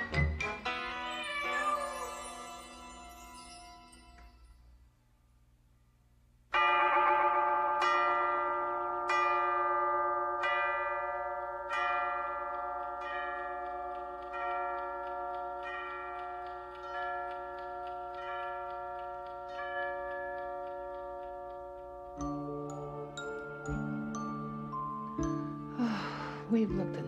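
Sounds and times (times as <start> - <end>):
clock bell striking: 6.5 - 25.8.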